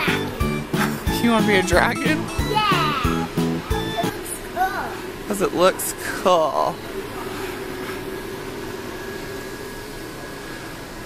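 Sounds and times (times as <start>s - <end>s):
air handling hum and hiss: 0.0s - 11.0s.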